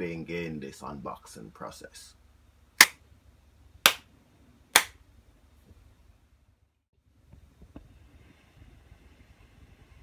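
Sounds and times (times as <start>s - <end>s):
sharp hand claps: 2.8s - 3.0s, 3.9s - 4.1s, 4.8s - 5.0s.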